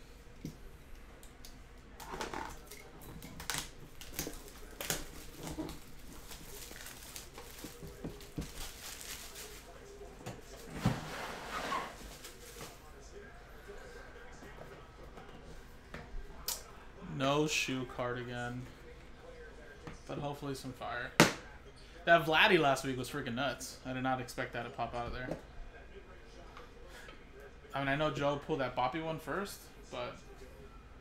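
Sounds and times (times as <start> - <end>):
plastic wrap tearing and crinkling: 3.4 - 9.8.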